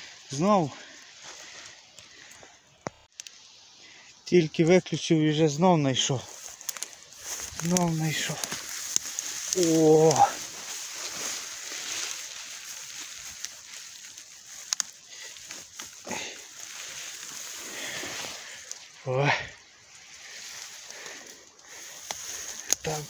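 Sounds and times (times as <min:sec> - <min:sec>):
dry grass rustling and crackling: 0:00.0 - 0:23.0.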